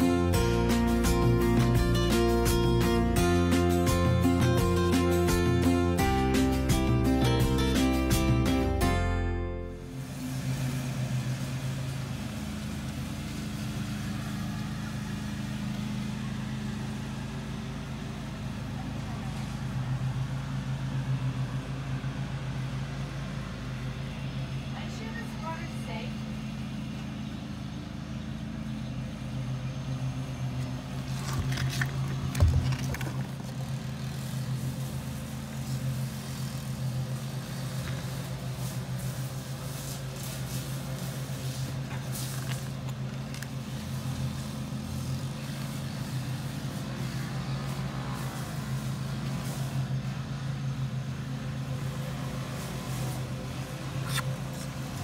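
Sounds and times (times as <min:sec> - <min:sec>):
low mechanical hum: 0:00.0 - 0:55.0.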